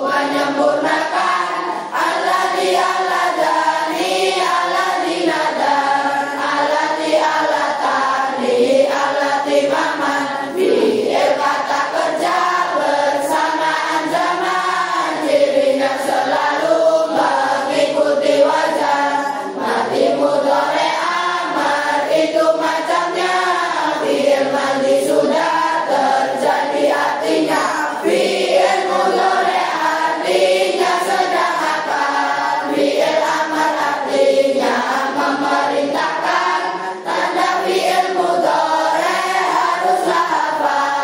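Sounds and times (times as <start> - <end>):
children singing in unison: 0.0 - 41.0.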